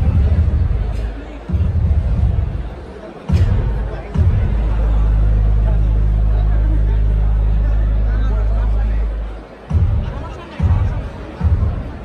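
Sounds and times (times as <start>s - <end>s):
band ensemble hits: 0.0s - 7.6s, 9.5s - 12.0s
faint audience voices: 0.0s - 12.0s
rock band playing low note: 0.0s - 12.0s.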